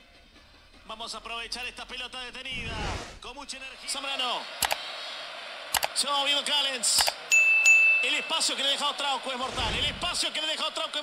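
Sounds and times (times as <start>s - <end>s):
man commentating: 0.9s - 4.5s, 5.9s - 7.2s, 8.0s - 11.0s
stadium crowd: 3.3s - 11.0s.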